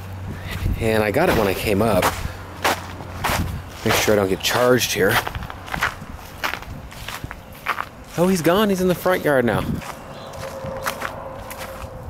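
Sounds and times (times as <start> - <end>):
footsteps on dry grass and snow: 0.4 - 12.0.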